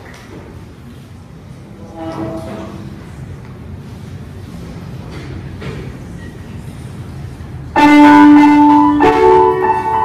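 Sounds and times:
grand piano notes: 7.8s - 10.0s.

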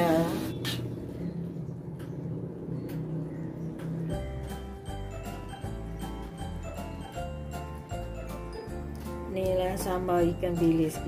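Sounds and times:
steady low hum: 0.0s - 7.4s.

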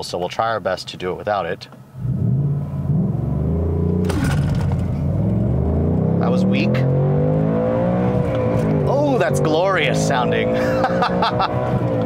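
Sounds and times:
car engine accelerating hard: 2.0s - 12.0s.

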